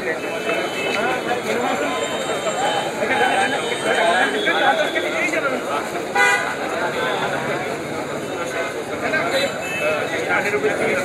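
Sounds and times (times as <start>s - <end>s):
crowd chatter: 0.0s - 11.0s
vehicle horn toot: 6.2s - 7.1s.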